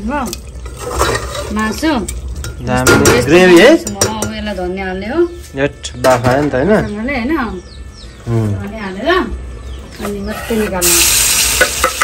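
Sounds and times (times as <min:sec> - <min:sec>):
ladle scraping metal pot: 0:00.6 - 0:04.5.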